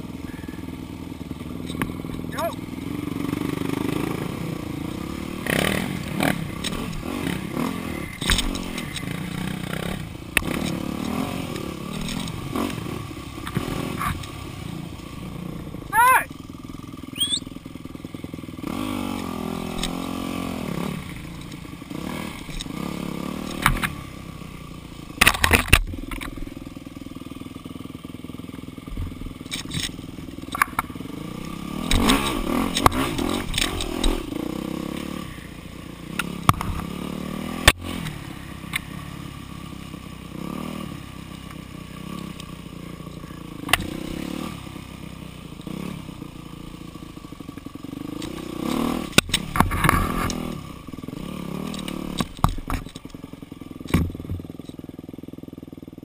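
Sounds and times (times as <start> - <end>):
dirt bike engines revving: 0.0 - 55.8.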